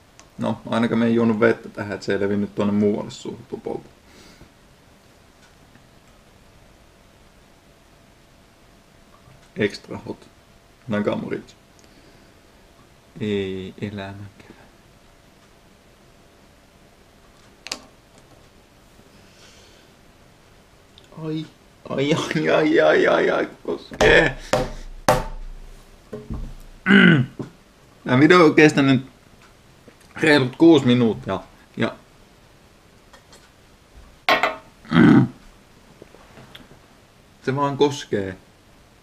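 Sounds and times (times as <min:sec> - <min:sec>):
person moaning: 0:26.8 - 0:27.4, 0:34.9 - 0:35.4.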